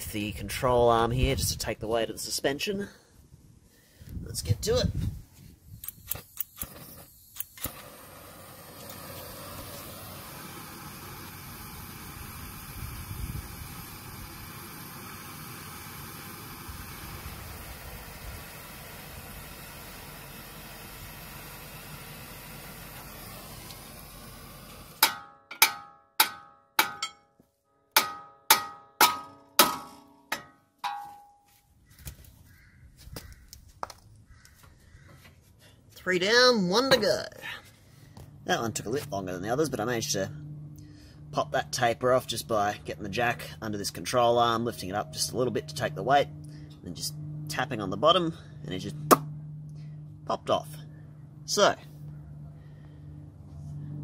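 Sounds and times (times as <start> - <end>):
gas torch hissing: 5.8 - 25.1
hammer blows ringing on metal: 28.0 - 31.4.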